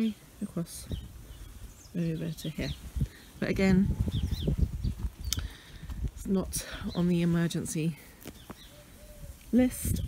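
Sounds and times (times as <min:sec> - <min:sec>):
faint bird chirps: 0:08.4 - 0:10.0.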